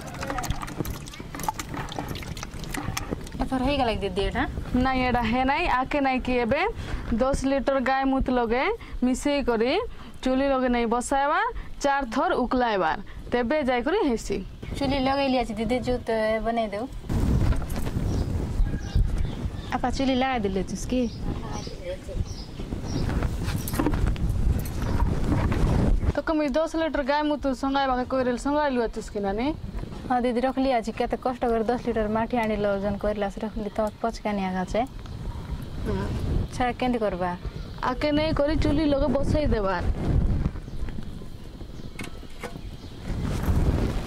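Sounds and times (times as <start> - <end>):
bucket and pot set down: 0.0 - 3.4
wind rumble on microphone: 0.0 - 44.0.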